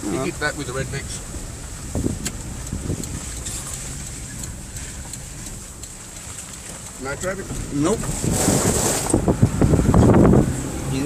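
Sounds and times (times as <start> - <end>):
engine and road rumble: 0.0 - 11.0
wind noise: 1.2 - 5.8, 6.7 - 11.0.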